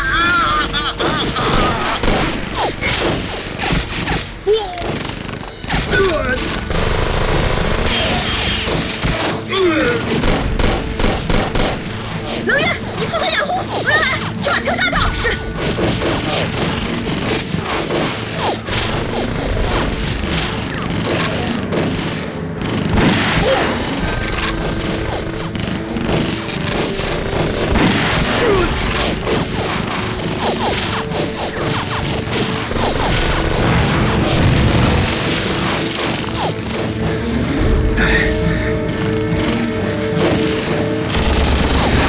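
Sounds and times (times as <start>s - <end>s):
dramatic music score: 0.0s - 42.0s
gunshots: 0.5s - 37.2s, 38.9s - 42.0s.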